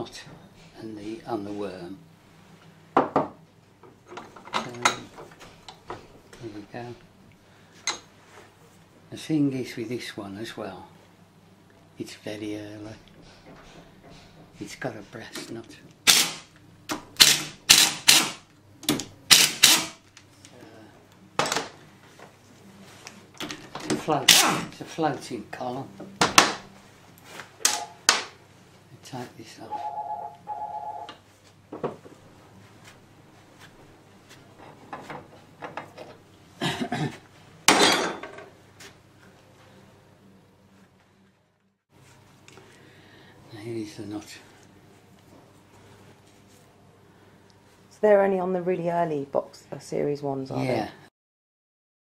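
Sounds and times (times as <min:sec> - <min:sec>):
impact wrench hammering: 0:16.1 - 0:16.4, 0:17.0 - 0:20.0.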